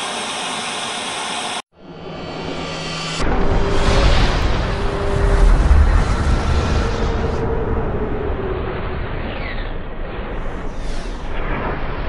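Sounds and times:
loud noisy rush: 0.0 - 9.1
deep bass rumble: 2.0 - 9.2.

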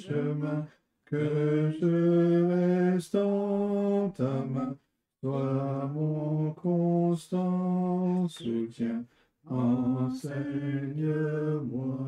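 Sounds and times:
voices singing a slow hymn: 0.0 - 12.0.

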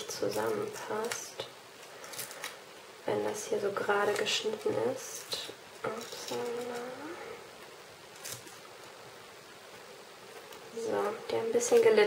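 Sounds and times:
tape and paper rustling: 0.0 - 2.6, 3.9 - 7.1, 8.1 - 8.9
woman humming: 5.8 - 7.4.

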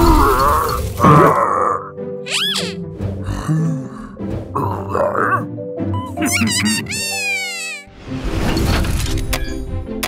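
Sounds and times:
cartoonish grunting and groaning: 0.0 - 5.5.

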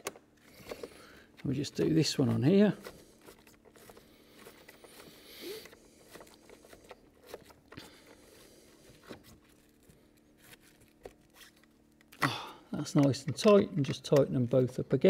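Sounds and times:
small clicks and scrapes: 0.0 - 12.2
low steady hum: 0.0 - 15.0.

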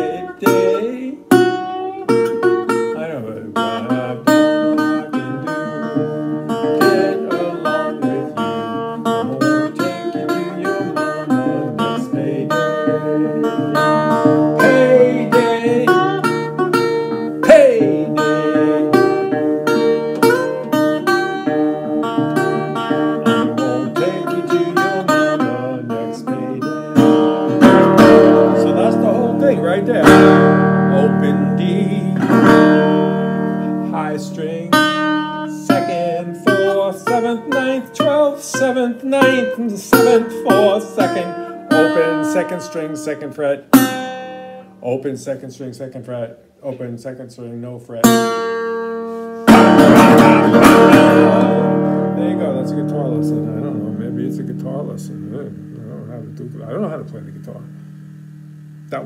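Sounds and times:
fingerstyle resonator guitar: 0.0 - 45.0, 48.0 - 59.0
guitar slide pitch glides: 3.6 - 44.8, 48.1 - 59.0.

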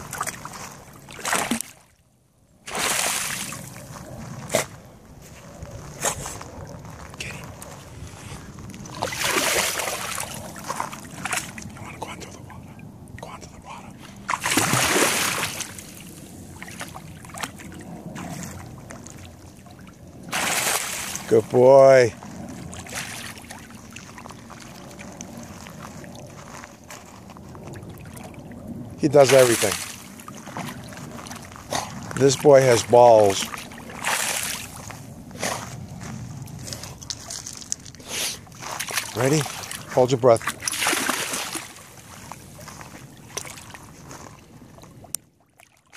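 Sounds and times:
dog splashing in shallow water: 0.0 - 1.8, 8.8 - 11.6, 14.3 - 21.4, 29.2 - 36.0, 38.6 - 45.9
water drips and trickles: 22.2 - 35.0.

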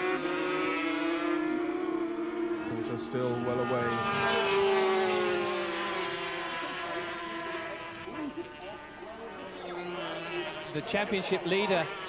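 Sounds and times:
racing motorcycle engines at high revs: 0.0 - 12.0.

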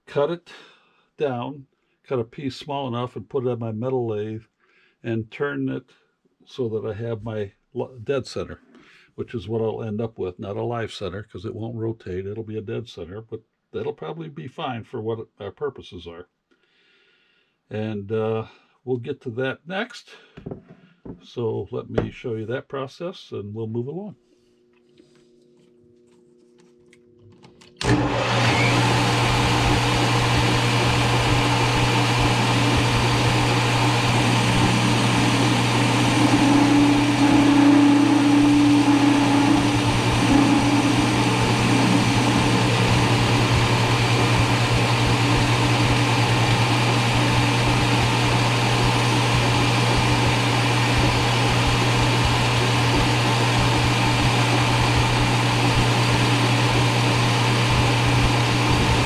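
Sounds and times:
steady loud tone: 27.8 - 47.6
metal lathe motor hum: 27.8 - 59.0.

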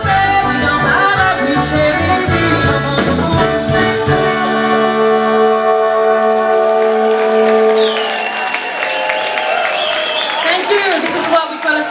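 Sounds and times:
band with horns playing: 0.0 - 10.4
audience applauding and cheering: 5.2 - 11.9
long high whistle: 7.0 - 10.5.

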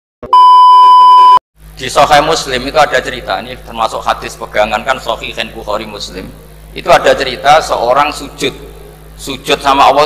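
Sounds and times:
test tone bleep: 0.2 - 1.4.

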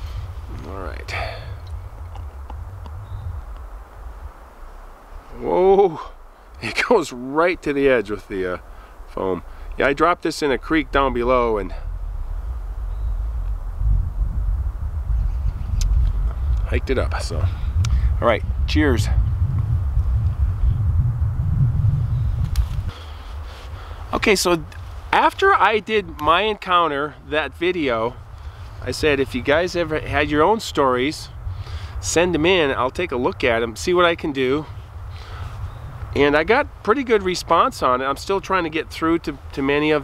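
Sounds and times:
low steady rumble: 0.0 - 40.0
wind buffeting microphone: 0.0 - 40.0
faint ticks: 1.6 - 3.7.

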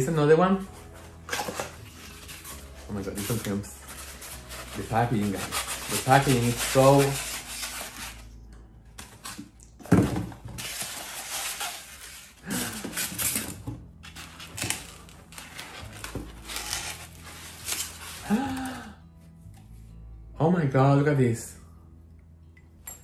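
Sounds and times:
cardboard and packing rustling: 0.6 - 8.3, 9.0 - 18.8.

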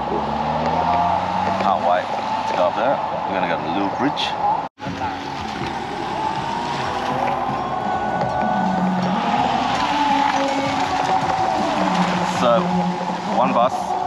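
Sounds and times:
indistinct voices: 0.0 - 14.0
steady background noise: 0.0 - 14.0.

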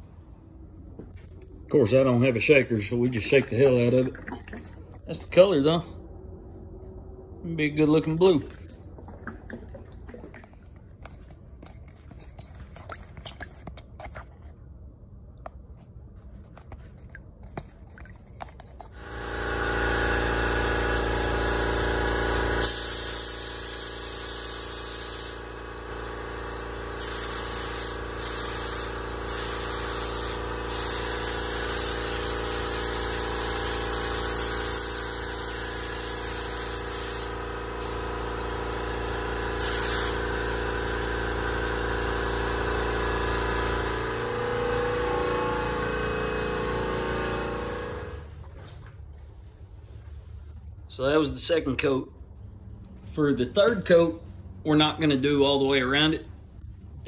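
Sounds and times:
steady machine drone: 18.9 - 22.8, 40.2 - 48.3
spray gun hissing: 22.6 - 25.5, 26.9 - 37.5, 39.6 - 40.4.

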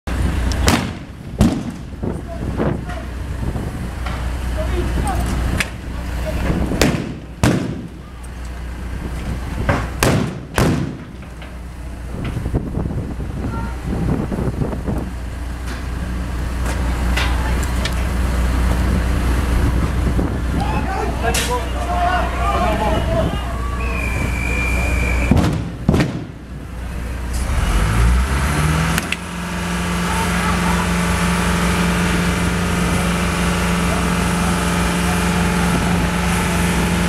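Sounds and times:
low engine hum: 0.0 - 37.0
sharp bangs and cracks: 0.6 - 2.2, 6.7 - 8.0, 9.6 - 11.6, 25.2 - 26.5.

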